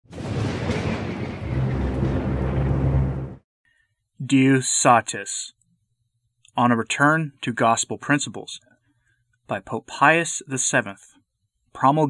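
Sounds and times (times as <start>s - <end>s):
thunder rumble: 0.1s - 3.4s.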